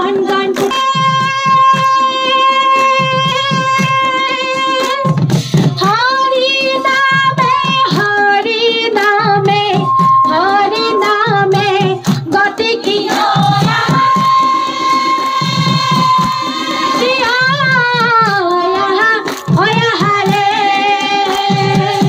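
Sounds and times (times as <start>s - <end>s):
drum beat: 0.0s - 22.0s
hand-clapping: 0.0s - 22.0s
women singing through microphones: 0.0s - 22.0s.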